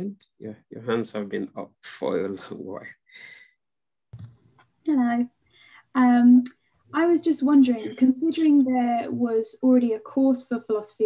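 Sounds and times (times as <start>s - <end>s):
woman speaking: 4.9s - 11.0s.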